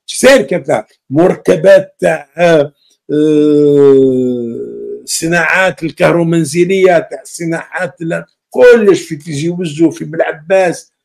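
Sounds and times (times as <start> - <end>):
man's drawn-out hesitation vowel: 1.2 - 5.4.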